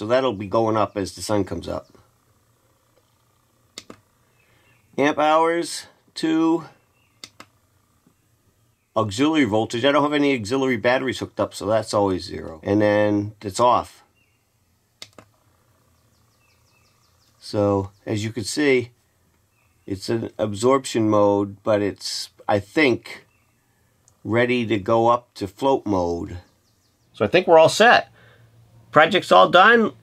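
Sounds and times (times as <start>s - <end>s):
push button clicking: 7.2s - 7.5s.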